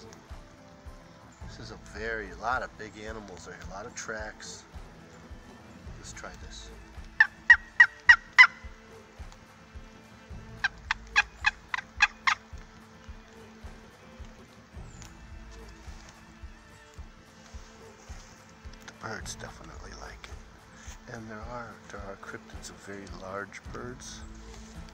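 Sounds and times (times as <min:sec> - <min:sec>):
turkey call yelps: 0:06.6 - 0:09.0, 0:10.4 - 0:12.6.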